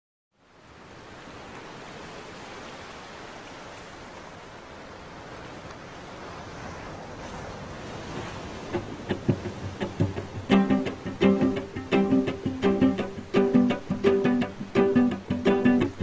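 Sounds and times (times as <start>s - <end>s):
steady rushing noise: 8.0s - 16.0s.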